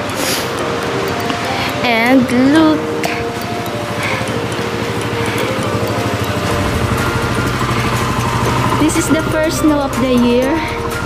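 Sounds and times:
motor scooter engine running: 0.0 - 11.0.

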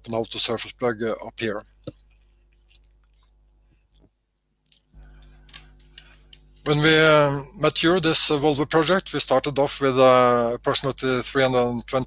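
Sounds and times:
low microphone hum: 5.0 - 12.0.

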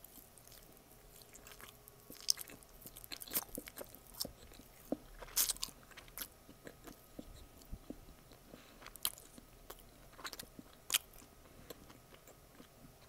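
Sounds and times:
mouth chewing sticky nougat: 0.0 - 13.0.

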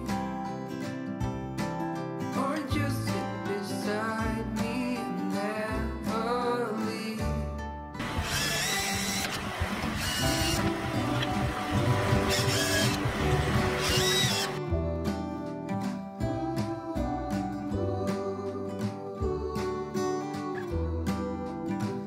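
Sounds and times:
background music: 0.0 - 22.0
cordless drill driving screws: 8.0 - 14.6.

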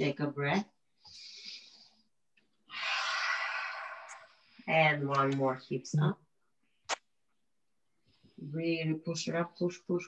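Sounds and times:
person exhaling: 2.7 - 4.4.

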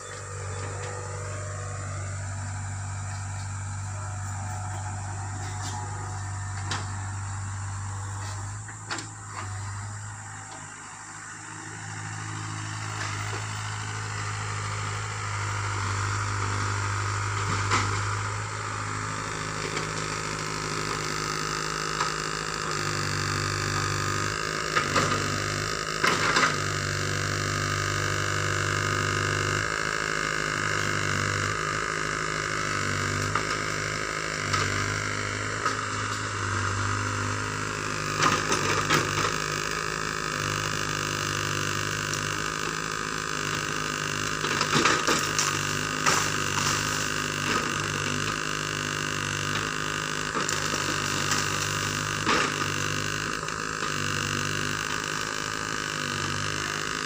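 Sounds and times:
excavator diesel engine running: 0.0 - 57.0.

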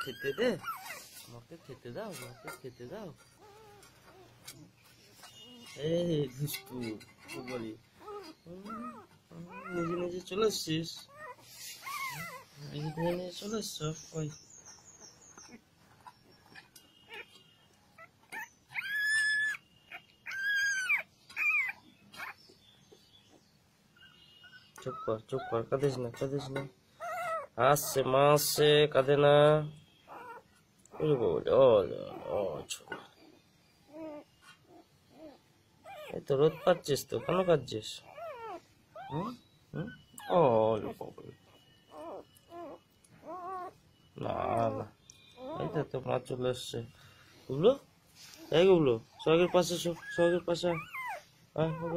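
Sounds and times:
puppy whining: 0.0 - 46.4, 47.3 - 51.9.

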